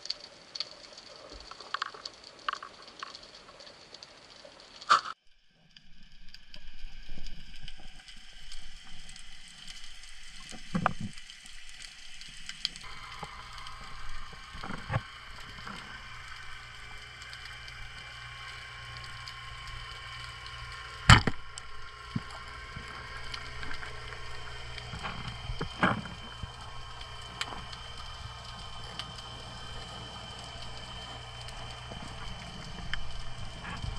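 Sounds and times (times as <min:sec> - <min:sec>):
faint crackling clicks: 0:00.0 - 0:33.9
steady hum: 0:12.8 - 0:33.9
speargun firing underwater: 0:21.1 - 0:21.4.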